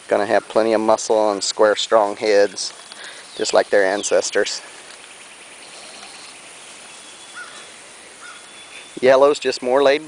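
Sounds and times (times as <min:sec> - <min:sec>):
insect high trill: 0:00.2 - 0:10.0
insect buzz: 0:00.6 - 0:09.9
faint chirps: 0:02.3 - 0:09.4.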